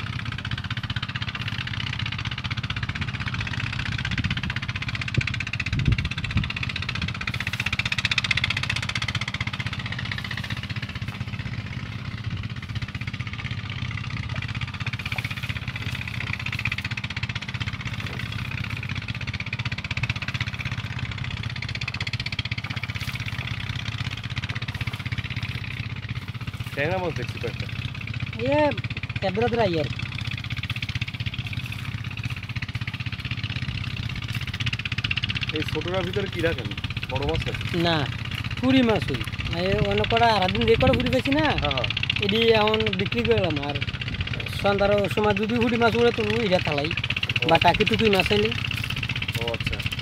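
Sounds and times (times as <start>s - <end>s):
small engine running: 0.0s - 50.0s.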